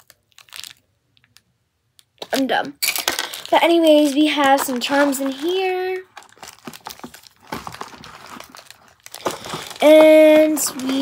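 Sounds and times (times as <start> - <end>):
plastic bag crinkling: 0.0 - 1.4, 2.2 - 11.0
girl speaking: 2.2 - 2.8, 3.4 - 6.1, 9.8 - 11.0.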